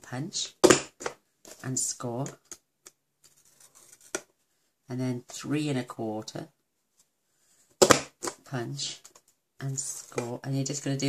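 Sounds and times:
plastic tool scraping paper: 3.3 - 4.2.

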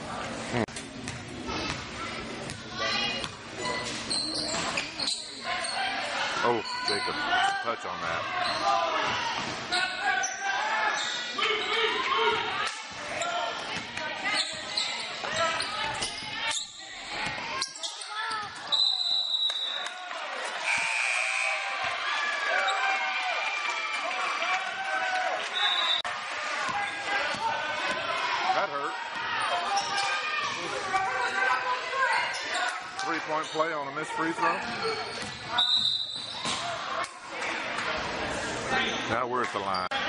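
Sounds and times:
voices in echoing hall: 0.0 - 23.1, 24.0 - 40.0.

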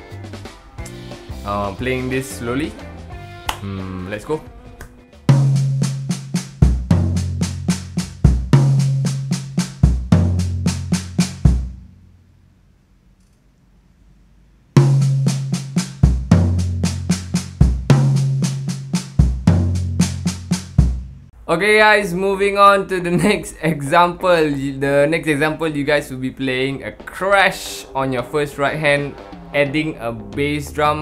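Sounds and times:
snare drum strokes: 5.3 - 11.7, 14.8 - 21.0
bass drum kick: 5.3 - 11.9, 14.8 - 21.3
tom drum hits: 5.3 - 11.9, 14.8 - 21.2.

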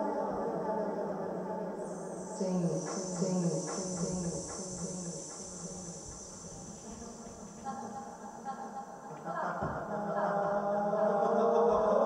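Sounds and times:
high steady drone: 1.7 - 8.9
low hum: 1.9 - 8.6.

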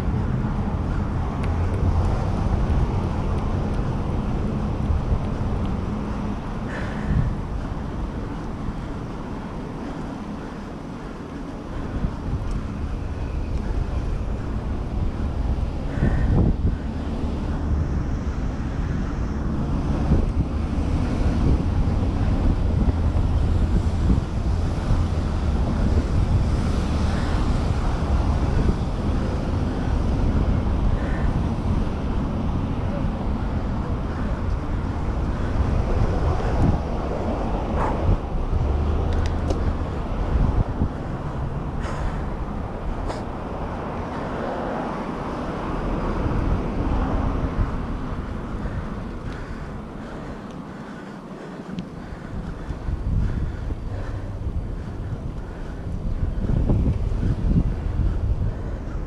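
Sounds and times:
street traffic: 0.0 - 59.0
wind buffeting microphone: 0.0 - 59.0.

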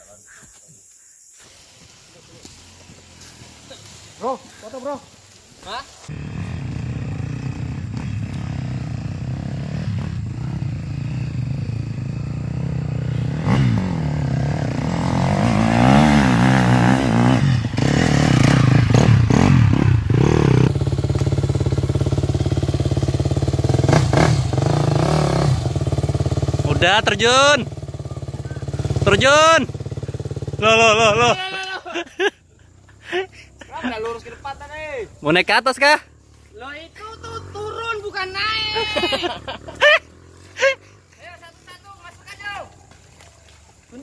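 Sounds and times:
motorcycle engine revving: 6.0 - 31.4, 35.0 - 41.7.

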